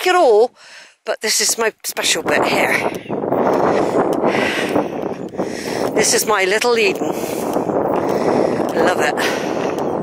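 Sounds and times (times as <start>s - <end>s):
wind buffeting microphone: 1.6s - 10.0s.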